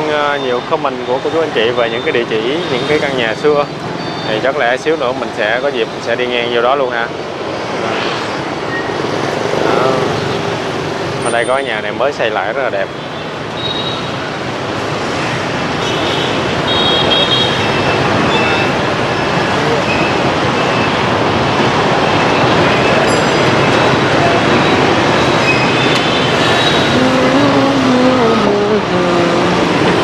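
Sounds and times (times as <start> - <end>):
motorbikes and cars passing: 0.0 - 30.0.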